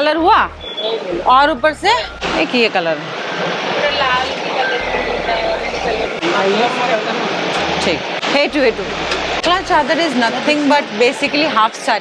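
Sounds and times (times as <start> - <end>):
indistinct background chatter: 0.0 - 12.0.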